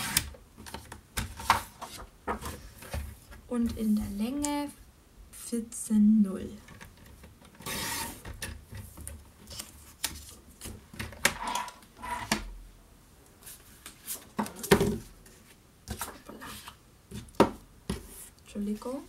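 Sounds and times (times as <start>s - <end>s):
paper trimmer blade scraping: 7.6s - 8.2s
paper rustling: 13.4s - 16.8s.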